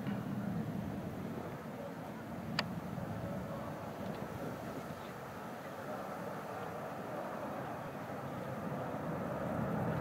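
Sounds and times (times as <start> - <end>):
distant jet engines rumbling: 0.0 - 10.0.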